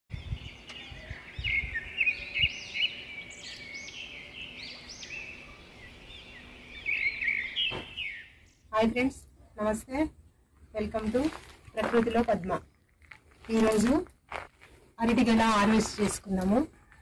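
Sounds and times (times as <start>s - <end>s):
birds chirping: 0.1s - 9.1s.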